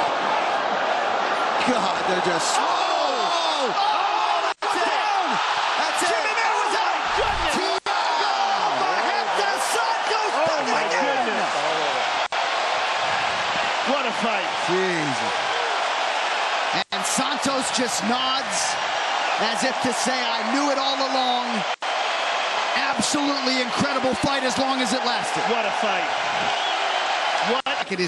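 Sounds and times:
crowd roaring and cheering: 0.0 - 28.0.

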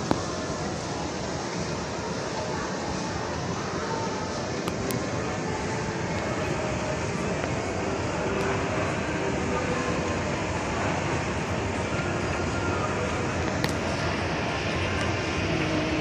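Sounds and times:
escalator mechanical rumble: 0.0 - 16.0.

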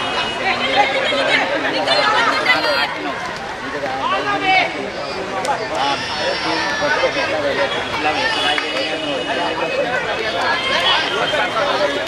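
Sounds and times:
voices shouting and chattering: 0.0 - 12.0.

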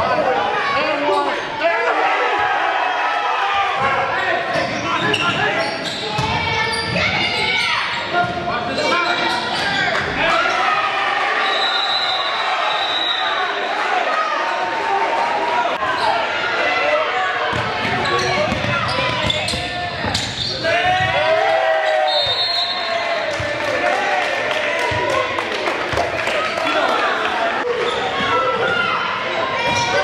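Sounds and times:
basketball bouncing on hardwood court: 17.5 - 20.2.

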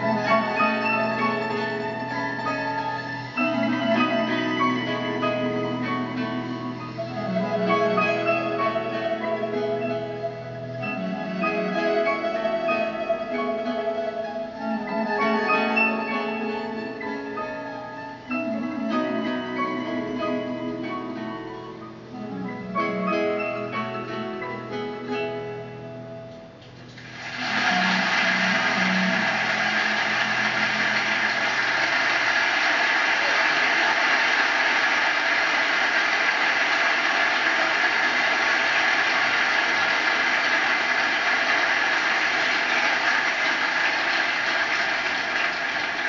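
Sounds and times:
audience applause: 0.0 - 9.9, 27.0 - 46.0
orchestra with plucked strings: 0.0 - 26.4.

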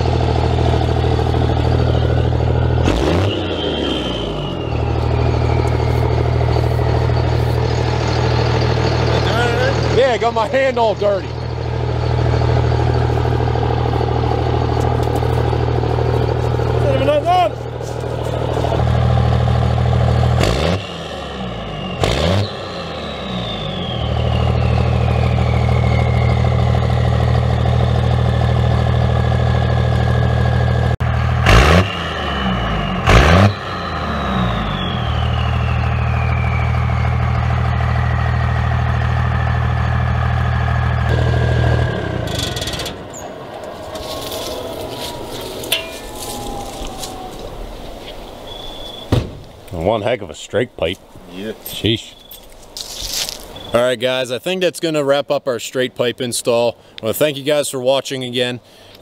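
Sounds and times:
diesel engine idling and revving: 0.0 - 54.3
turbo whistle falling in pitch: 1.8 - 8.3, 20.6 - 27.3, 31.5 - 38.4, 45.6 - 49.3.

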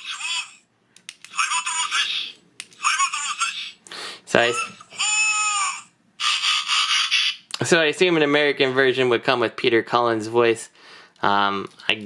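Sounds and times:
recorded voice lines through tinny speaker: 1.3 - 7.0.

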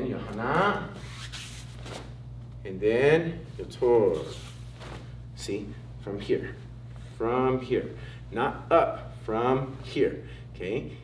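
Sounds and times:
uniform sleeve swishing: 0.9 - 2.2, 4.0 - 5.2.

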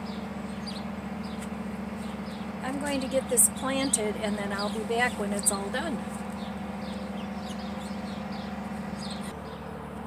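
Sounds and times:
small birds chirping: 0.0 - 9.7
low drone of distant machinery: 0.0 - 10.0.

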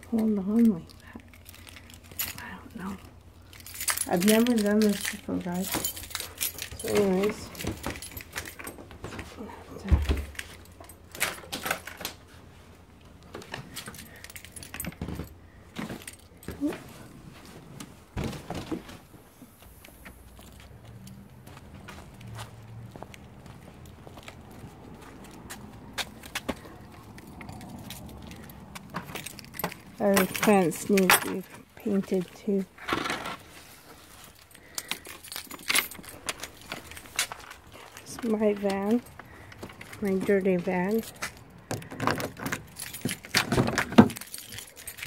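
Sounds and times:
keys jangling: 0.5 - 12.2, 13.4 - 17.0, 19.8 - 32.6, 34.1 - 45.0.

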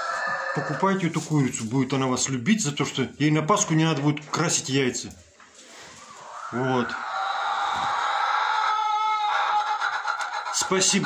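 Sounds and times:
hens calling: 0.0 - 1.1, 5.6 - 11.0.

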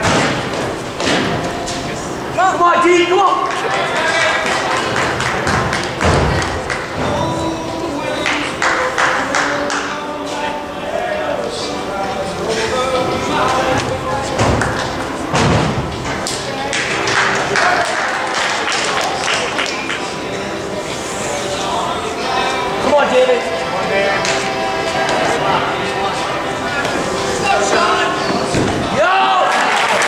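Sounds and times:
crowd chatter: 0.0 - 30.0
voices in a gym: 0.0 - 30.0.

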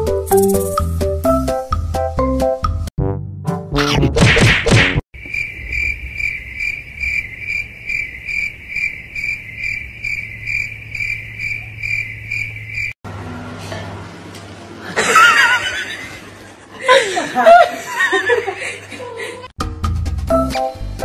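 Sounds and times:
high pulsing chirp: 5.2 - 13.0.

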